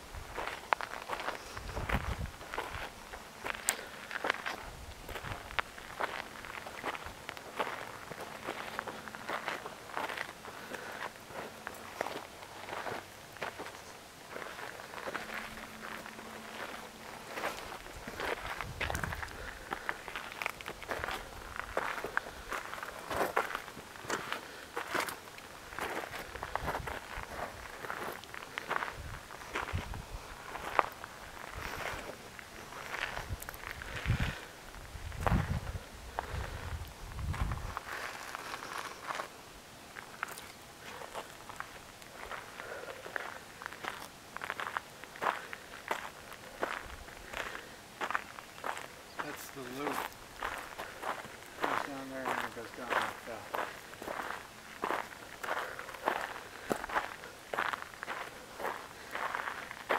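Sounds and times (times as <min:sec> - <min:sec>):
footsteps on gravel trail: 0:00.0 - 0:59.9.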